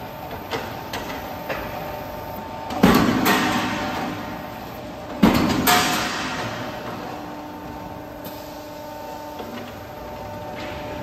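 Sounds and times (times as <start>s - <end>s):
hydraulic motor and pump humming: 0.0s - 11.0s.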